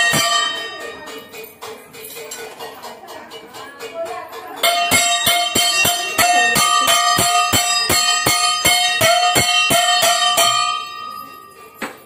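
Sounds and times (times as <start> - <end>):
hand bell ringing: 0.0 - 2.3, 4.6 - 12.0.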